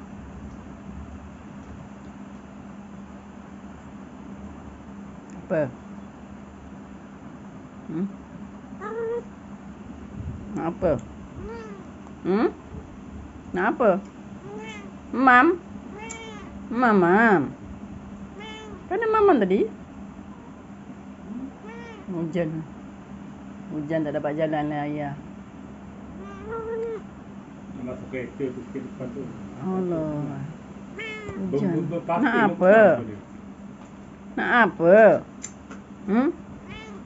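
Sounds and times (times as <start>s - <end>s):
cat meowing: 8.8s - 9.3s, 11.4s - 11.9s, 14.4s - 14.9s, 15.9s - 16.5s, 18.3s - 18.9s, 21.3s - 22.1s, 26.2s - 27.1s, 31.0s - 31.5s, 36.6s - 37.0s.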